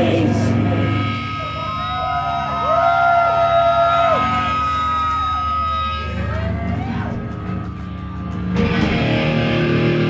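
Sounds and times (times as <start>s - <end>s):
electric guitar feedback: 0.0s - 10.0s.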